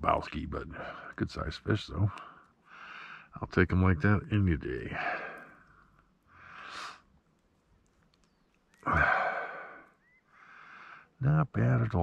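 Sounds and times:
man breathing and sighing: 2.1s - 3.4s, 4.9s - 7.1s, 8.8s - 11.2s.

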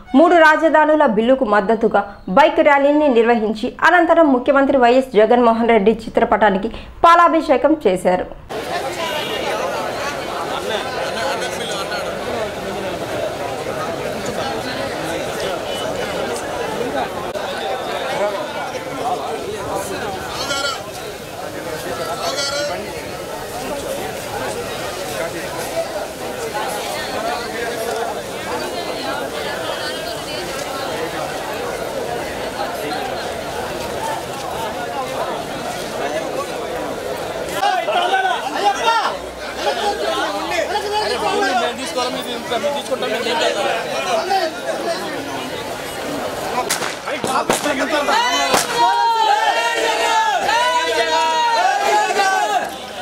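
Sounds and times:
crowd talking: 0.0s - 53.0s.

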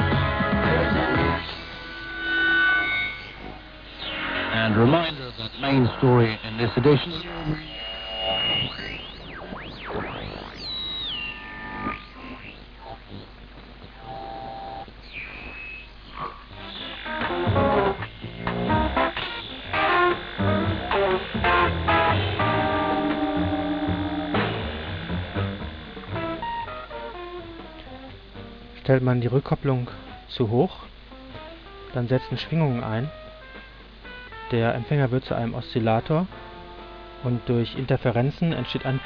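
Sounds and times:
radio heterodyne whistling: 0.0s - 13.3s, 14.0s - 27.2s
radio station music: 0.0s - 39.0s.

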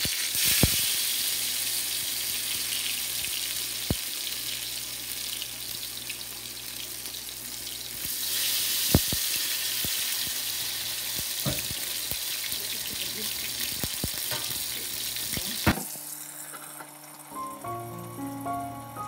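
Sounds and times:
slices sizzling in oil: 0.0s - 19.0s.

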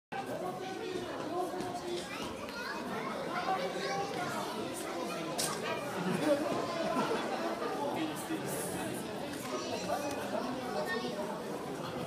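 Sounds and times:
overlapping chatter of many voices: 0.1s - 12.0s
children's voices: 0.2s - 8.4s, 9.2s - 12.0s.

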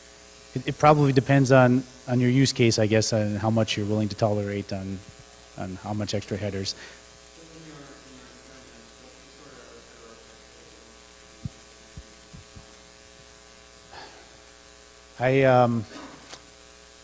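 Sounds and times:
electrical mains hum: 0.0s - 17.0s
faint distant voice: 7.4s - 11.6s.

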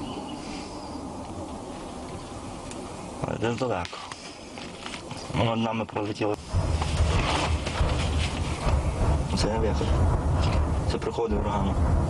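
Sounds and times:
rocket artillery rumble: 6.2s - 12.0s.

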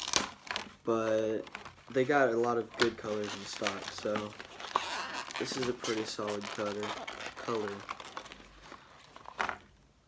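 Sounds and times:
plastic packaging crackling: 0.0s - 9.7s.

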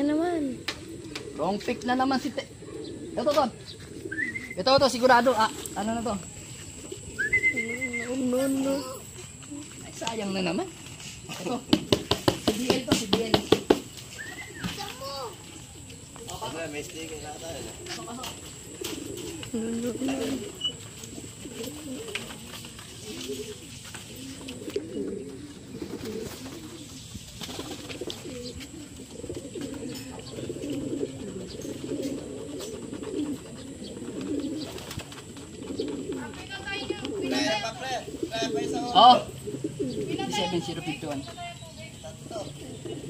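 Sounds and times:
pigeons cooing: 0.0s - 43.0s.

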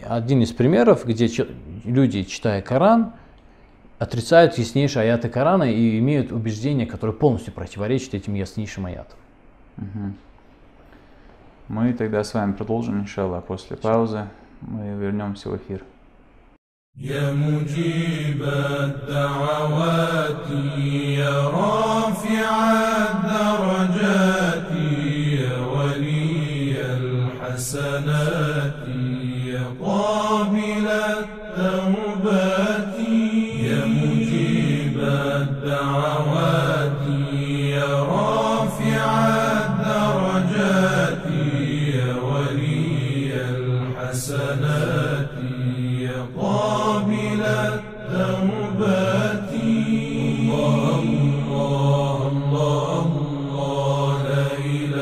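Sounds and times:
low held drone: 17.0s - 55.0s
person chanting melodic lines: 33.5s - 35.6s.

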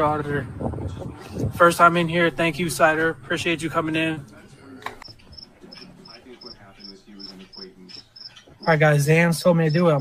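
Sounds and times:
cricket chirping: 5.3s - 8.8s.

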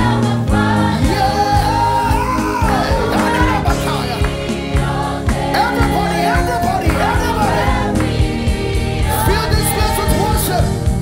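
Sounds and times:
choir singing: 0.0s - 10.7s
drums steady beat: 0.0s - 11.0s
electric bass guitar: 0.0s - 11.0s
lead vocal singing: 0.0s - 11.0s.

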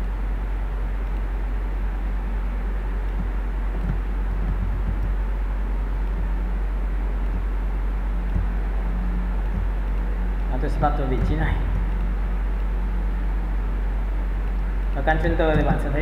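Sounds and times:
constant low hum: 0.0s - 16.0s.

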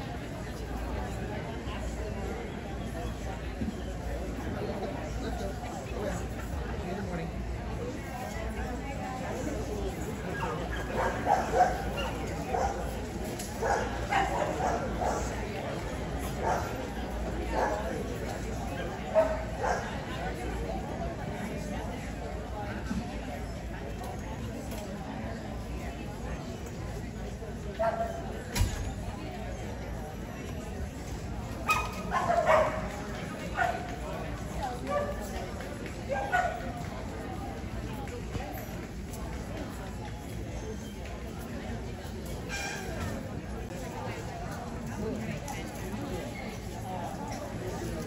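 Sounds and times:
crowd chatter: 0.0s - 48.0s
murmur of voices: 0.0s - 48.0s
dog barking: 31.7s - 32.9s.

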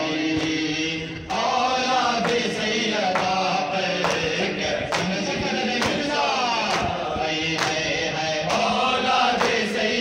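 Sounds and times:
men chanting in unison: 0.0s - 10.0s
chest-beating slaps: 0.4s - 0.7s, 5.8s - 7.0s.

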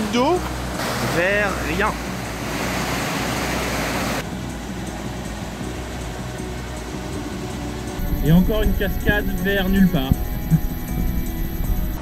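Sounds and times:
stream and waterfall rushing: 0.0s - 4.2s.

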